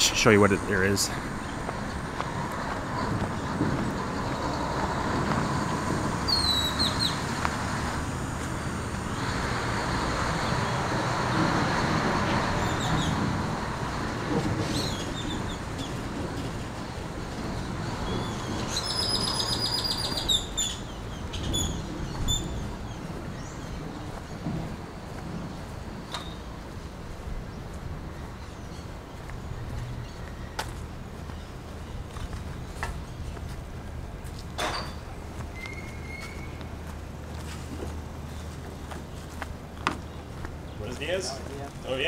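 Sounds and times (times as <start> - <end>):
birds chirping: 0.0 - 42.0
outdoor background noise: 0.0 - 42.0.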